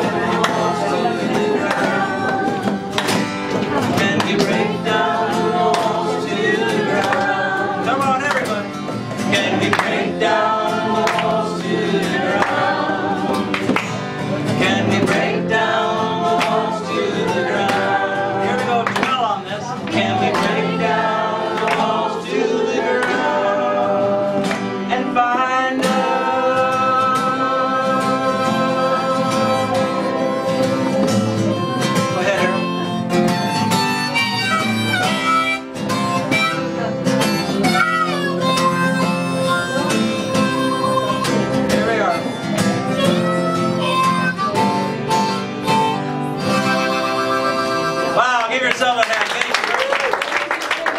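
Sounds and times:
group of voices singing: 0.0s - 33.6s
acoustic guitar strummed: 0.0s - 49.0s
applause: 48.4s - 50.9s.

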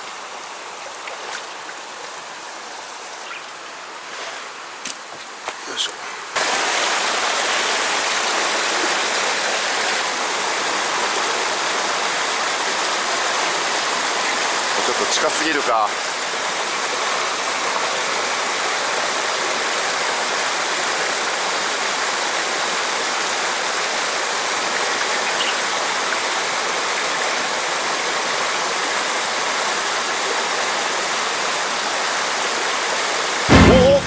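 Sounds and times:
waterfall rushing into pool: 0.0s - 34.0s
sudden loud burst: 33.5s - 34.0s.

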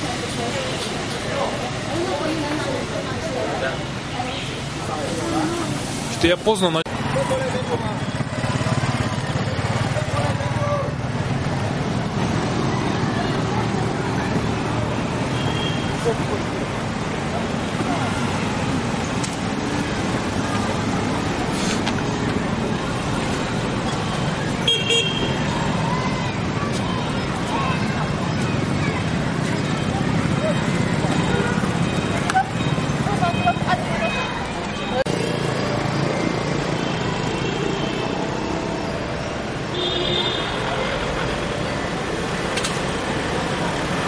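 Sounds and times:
motorcycles and cars passing: 0.0s - 44.0s.

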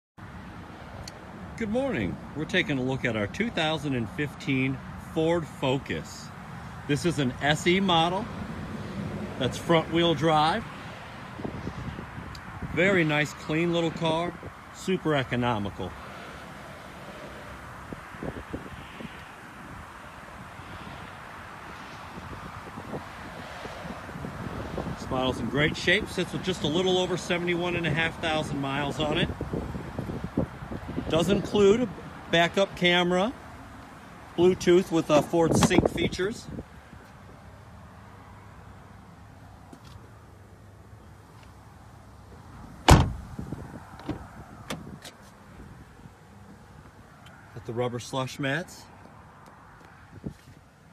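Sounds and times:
wind buffeting microphone: 11.3s - 12.8s, 17.8s - 19.9s, 21.6s - 25.8s, 29.0s - 31.6s, 42.9s - 45.0s
car door clicks and knocks: 42.8s - 43.2s.

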